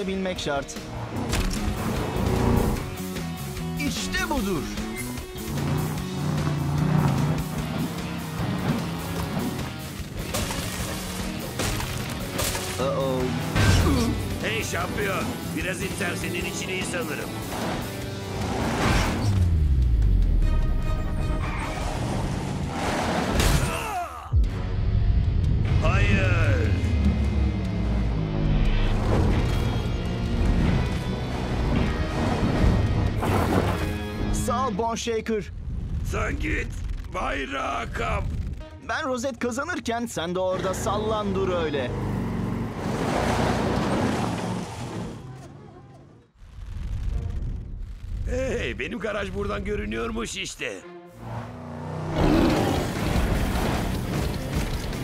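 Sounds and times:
background music: 0:00.0 - 0:43.8, 0:48.8 - 0:55.0
monster truck engine rushing away: 0:05.4 - 0:09.7, 0:40.5 - 0:46.2, 0:51.2 - 0:55.0.

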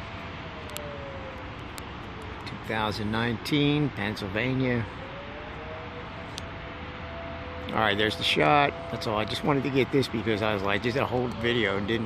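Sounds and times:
distant vehicle traffic: 0:00.0 - 0:12.0.

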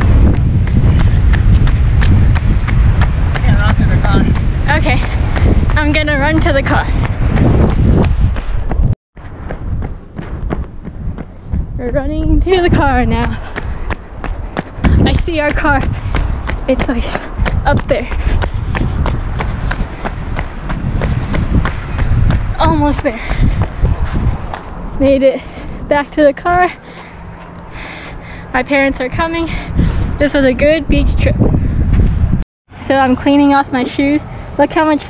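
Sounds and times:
running footsteps on pavement: 0:00.0 - 0:35.0
wind rumble on microphone: 0:00.0 - 0:35.0.

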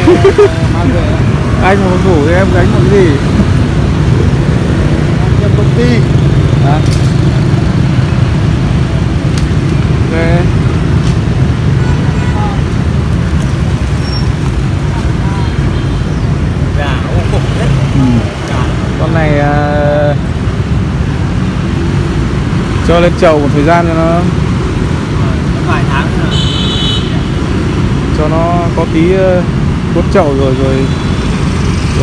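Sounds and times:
voices talking: 0:00.0 - 0:09.0, 0:09.6 - 0:10.8, 0:11.4 - 0:21.7, 0:22.6 - 0:32.0
street traffic rumble: 0:00.0 - 0:32.0.

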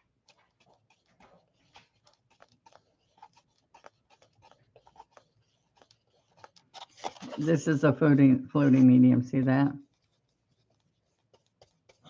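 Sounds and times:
paintbrush scraping and dabbing: 0:00.0 - 0:12.0.

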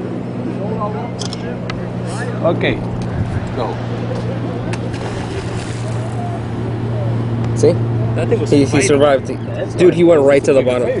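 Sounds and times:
low engine hum: 0:00.0 - 0:11.0
wind: 0:00.0 - 0:11.0
sea noise: 0:03.1 - 0:08.2.

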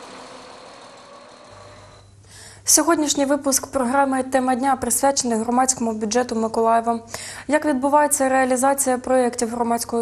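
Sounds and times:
thin high whine: 0:00.0 - 0:02.3.

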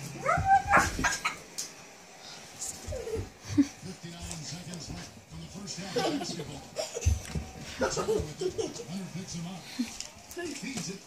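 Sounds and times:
puppy yelping: 0:00.2 - 0:01.4.

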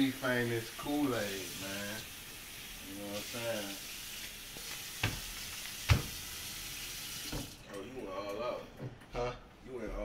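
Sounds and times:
tap running into steel sink: 0:05.0 - 0:06.2.

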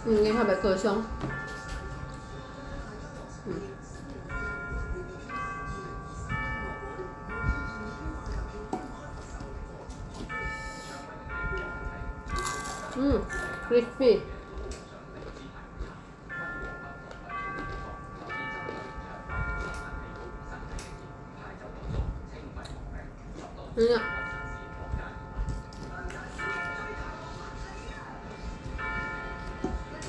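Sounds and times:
slow chiming bell music: 0:00.0 - 0:30.0
soft chewing: 0:14.2 - 0:24.0, 0:25.0 - 0:30.0.

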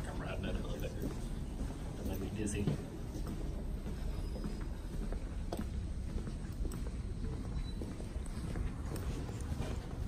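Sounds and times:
footsteps on hard floor: 0:01.0 - 0:10.0.

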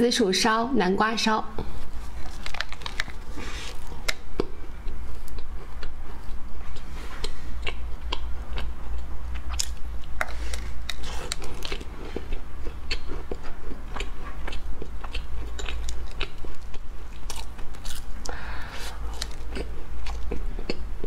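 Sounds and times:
steady low hum: 0:00.0 - 0:21.0
pastry crunching while chewing: 0:02.1 - 0:21.0.

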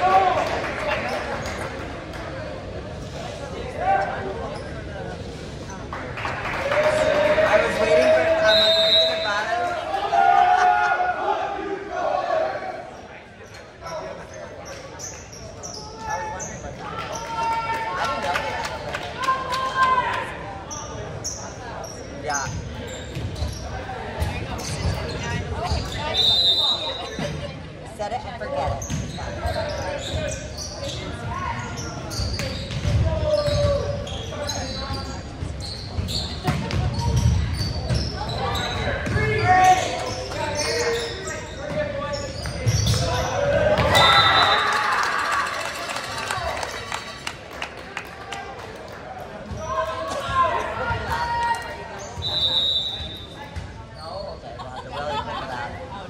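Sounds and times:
background chatter: 0:00.0 - 0:56.0.

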